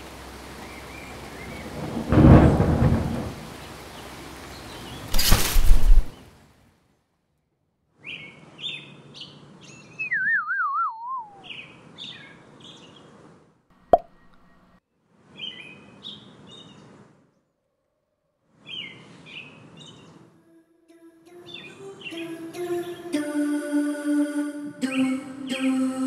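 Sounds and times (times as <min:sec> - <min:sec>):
birds chirping: 0:08.0 - 0:13.0
wavering whistle sliding down: 0:10.0 - 0:11.5.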